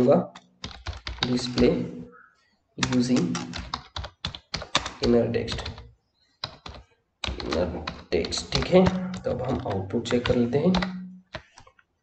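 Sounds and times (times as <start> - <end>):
computer keyboard typing: 0.0 - 1.9, 2.8 - 11.7.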